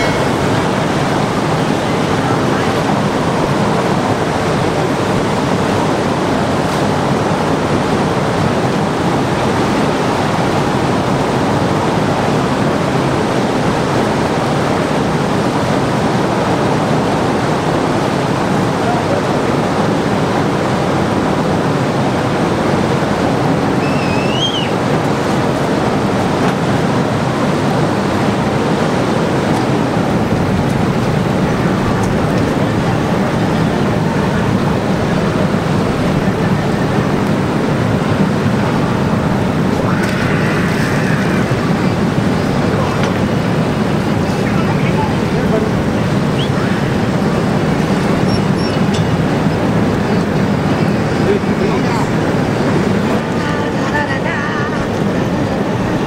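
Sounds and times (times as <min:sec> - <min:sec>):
rushing churned water: 0:00.0 - 0:56.0.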